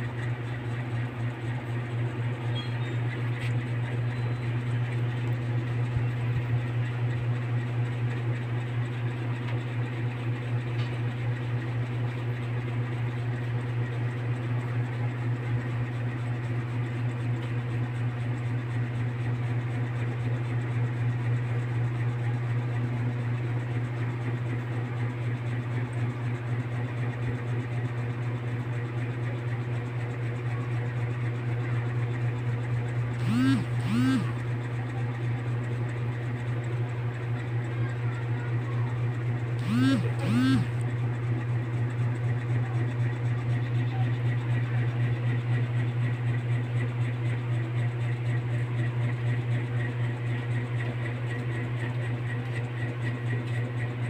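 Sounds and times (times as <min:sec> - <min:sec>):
short voice sounds: 0:33.2 - 0:34.4, 0:39.6 - 0:40.8.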